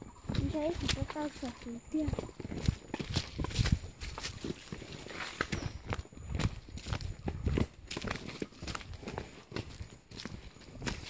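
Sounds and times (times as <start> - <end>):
footsteps on dirt path: 0.0 - 11.0
undergrowth brushing: 0.3 - 5.8.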